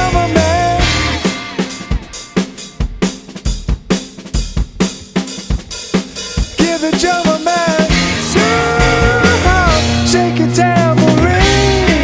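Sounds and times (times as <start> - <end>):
person singing: 0.0 - 1.6, 6.5 - 12.0
band playing: 0.0 - 12.0
drum kit groove: 0.0 - 12.0.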